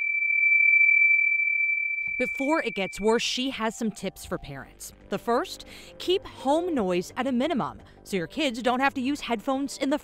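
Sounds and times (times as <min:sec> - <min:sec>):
high-pitched pure tone: 0:00.0 - 0:04.0.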